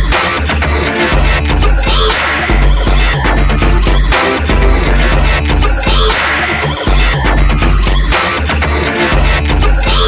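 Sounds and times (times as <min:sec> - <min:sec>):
electronic music with heavy bass: 0:01.4 - 0:08.2.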